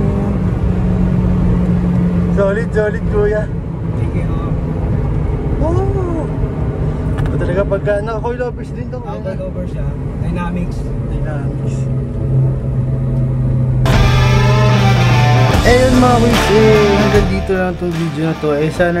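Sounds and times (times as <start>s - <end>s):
car engine droning in cabin: 0.0s - 19.0s
music: 13.9s - 19.0s.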